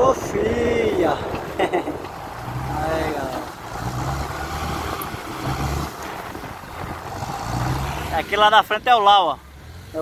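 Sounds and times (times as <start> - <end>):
diesel engine under load: 0.0 - 10.0.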